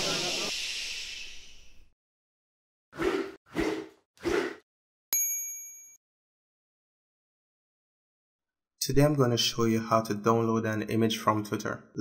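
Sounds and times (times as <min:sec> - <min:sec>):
hiss: 0:00.0 - 0:01.7
bright chime-like ding: 0:05.2 - 0:06.0.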